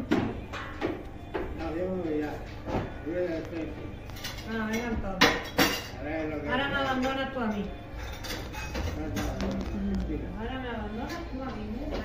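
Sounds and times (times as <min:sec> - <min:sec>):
tableware clinking: 0:03.9 - 0:09.9.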